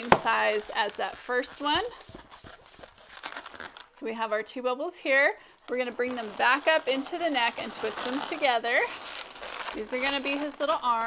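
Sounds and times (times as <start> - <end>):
balloon rubbing and squeaking: 0.0 - 3.9, 5.6 - 11.0.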